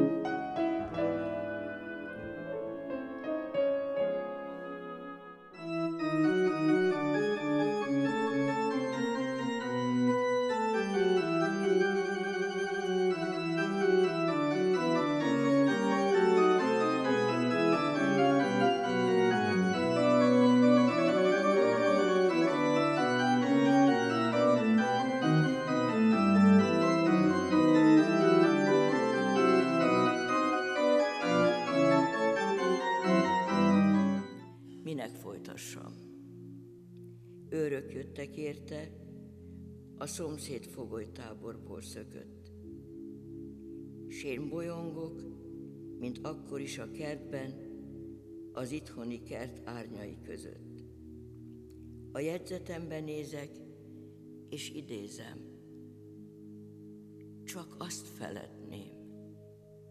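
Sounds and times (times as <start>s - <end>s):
organ playing sustained chords: 0.0s - 59.9s.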